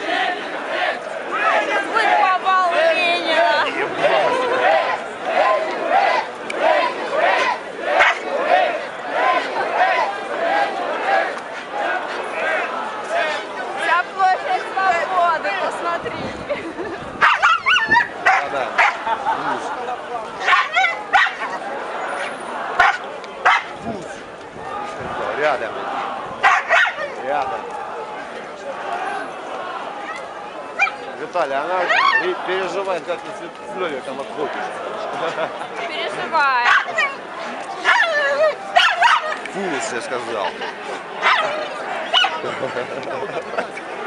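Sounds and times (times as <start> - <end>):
crowd murmur: 0.0 - 44.0
dog barking and yelping: 17.2 - 19.0, 20.4 - 21.5, 26.4 - 27.0, 36.6 - 37.1, 37.8 - 38.2, 38.8 - 39.4, 42.1 - 42.4.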